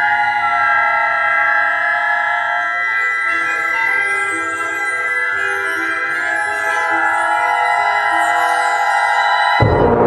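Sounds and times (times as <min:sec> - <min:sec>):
concert band sustained chords: 0:00.0 - 0:10.0.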